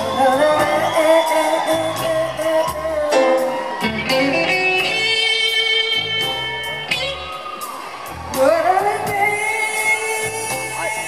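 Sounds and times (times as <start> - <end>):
live band playing: 0.0 - 11.0
woman singing lead: 0.0 - 11.0.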